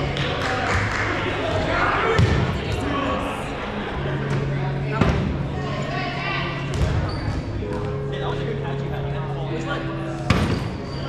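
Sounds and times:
players chattering: 0.0s - 11.0s.

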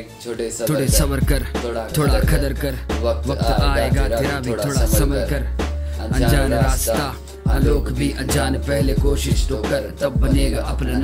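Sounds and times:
man rapping over a beat: 0.0s - 11.0s
deep bass: 0.8s - 11.0s.

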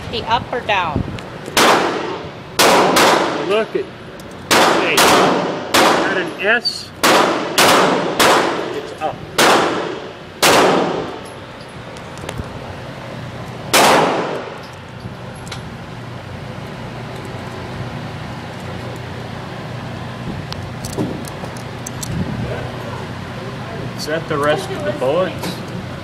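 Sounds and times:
steady low hum: 0.0s - 26.0s
pistol shots with echo: 1.6s - 3.5s, 4.5s - 6.2s, 7.0s - 8.8s, 9.4s - 11.2s, 13.7s - 14.6s.

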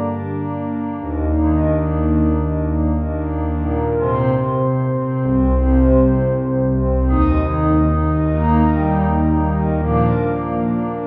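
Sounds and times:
synthesizer pad chords: 0.0s - 11.0s.

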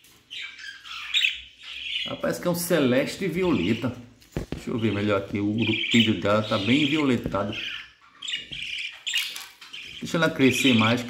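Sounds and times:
budgerigar chicks squawking: 0.2s - 4.0s, 4.7s - 11.0s.

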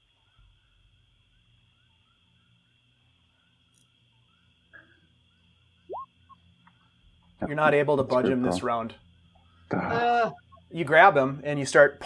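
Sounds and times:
soft small chirps: 0.0s - 7.4s, 10.3s - 10.8s
low steady hum: 0.0s - 12.0s.

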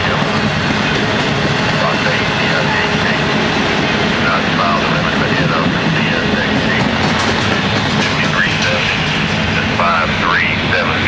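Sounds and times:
train wheels rolling on rails: 0.0s - 11.0s.

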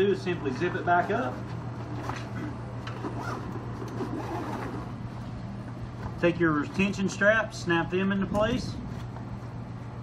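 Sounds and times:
steady low hum: 0.0s - 10.0s
bag zipper closing: 3.0s - 5.0s.

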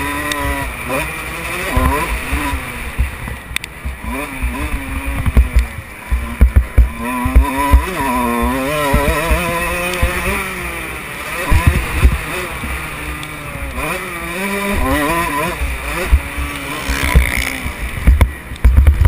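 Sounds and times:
dirt bike engine revving: 0.0s - 19.0s
low thuds on microphone: 5.1s - 9.4s, 17.0s - 19.0s.

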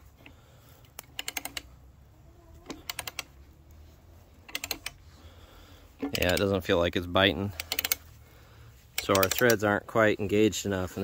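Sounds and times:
rapid clicking of screw log splitter: 0.2s - 1.7s, 2.7s - 3.3s, 4.4s - 5.0s, 6.0s - 6.6s, 7.5s - 8.1s, 8.9s - 9.7s.

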